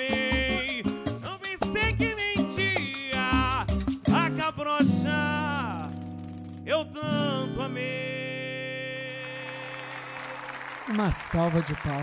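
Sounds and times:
man singing with band: 0:00.0 - 0:05.9, 0:06.7 - 0:09.9
audience applause: 0:09.2 - 0:12.0.

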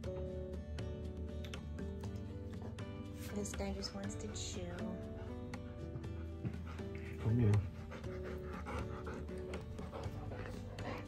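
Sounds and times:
soft background music: 0:00.0 - 0:11.0
dog panting: 0:02.5 - 0:11.0.

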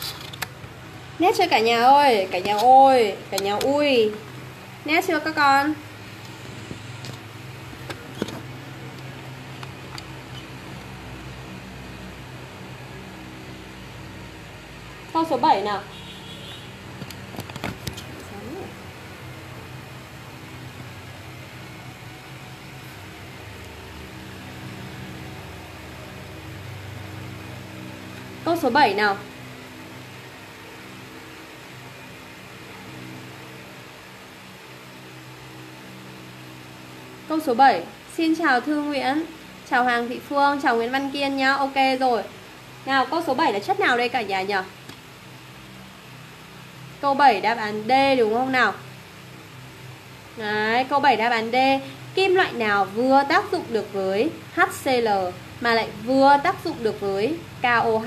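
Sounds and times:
constant hiss: 0:00.0 - 0:58.0
low background hum: 0:00.0 - 0:58.0.

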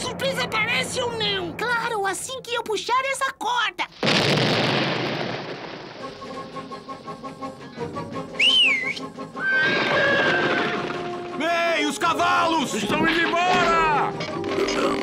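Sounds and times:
background music: 0:04.8 - 0:15.0
held whistle-like tone: 0:07.6 - 0:09.8
short wavy whistle: 0:08.3 - 0:09.1.

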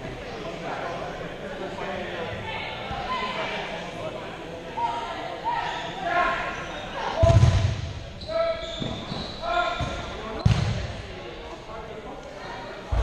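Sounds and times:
voices calling out echoing: 0:00.0 - 0:13.0.

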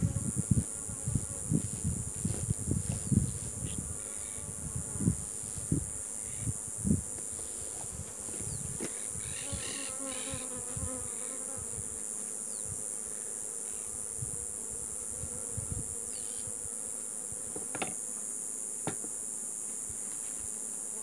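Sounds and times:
honeybees buzzing: 0:00.0 - 0:21.0
sharp knocks on hive box: 0:17.5 - 0:18.0, 0:18.8 - 0:19.2.

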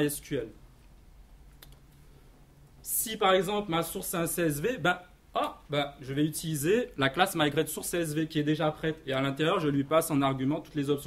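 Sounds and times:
man speaking: 0:00.0 - 0:00.6, 0:02.8 - 0:11.0
faint low room hum: 0:00.0 - 0:11.0
faint click: 0:00.8 - 0:02.0.

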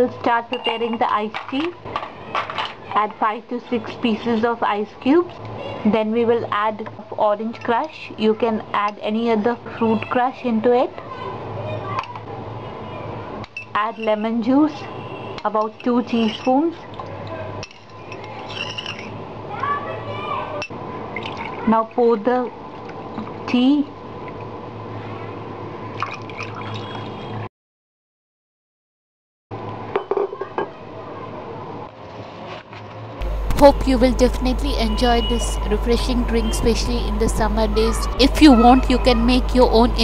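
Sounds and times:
low room hum: 0:33.2 - 0:40.0.

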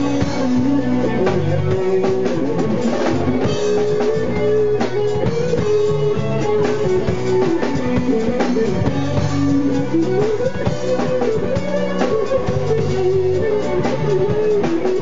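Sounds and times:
band playing instrumental groove: 0:00.0 - 0:15.0
held melody notes: 0:00.0 - 0:15.0
steady drum beat: 0:00.0 - 0:15.0.

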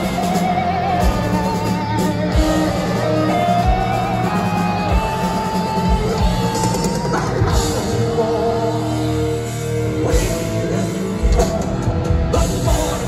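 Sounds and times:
electric guitar melody with vibrato: 0:00.0 - 0:13.0
heavy metal band playing live: 0:00.0 - 0:13.0.

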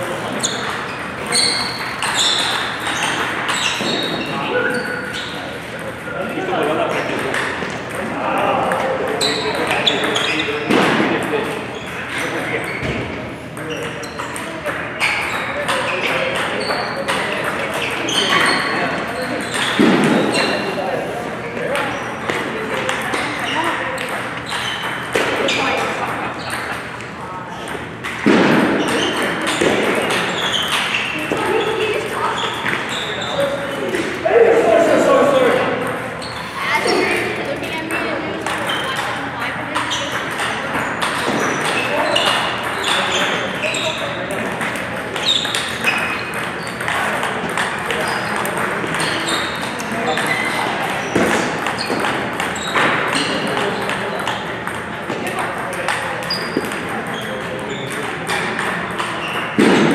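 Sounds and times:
table tennis ball hits: 0:00.0 - 0:20.7, 0:21.5 - 0:26.9, 0:27.5 - 0:36.3, 0:37.9 - 0:59.9.

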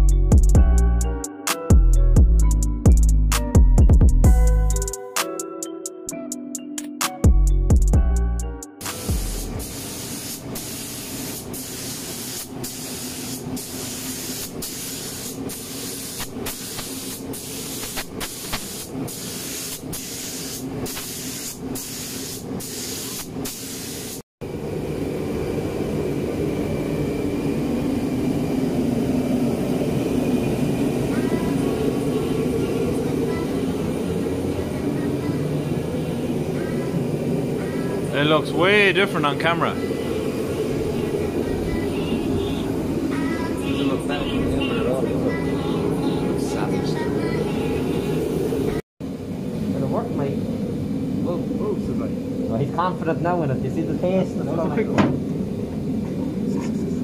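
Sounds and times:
spray gun hissing: 0:08.8 - 0:24.2.

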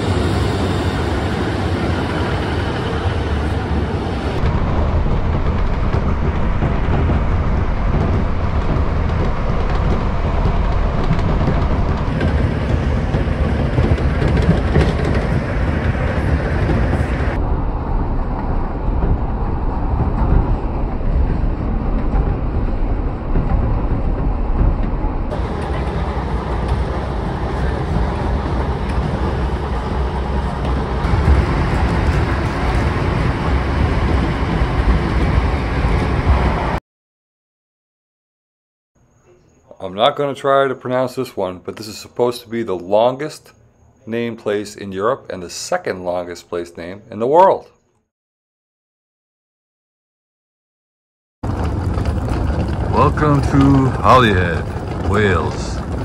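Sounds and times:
train wheels rumbling on rails: 0:00.0 - 0:36.8, 0:51.4 - 0:56.0.

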